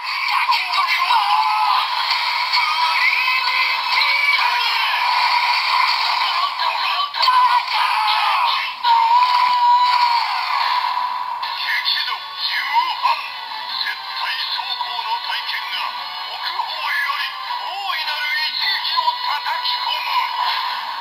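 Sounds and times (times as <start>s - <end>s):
backing song from small speaker: 0.0s - 21.0s.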